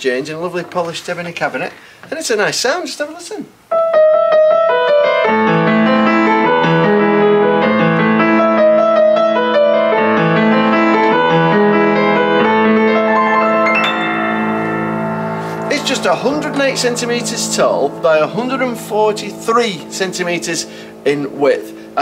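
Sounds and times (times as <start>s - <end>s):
piano playing: 3.7s - 22.0s.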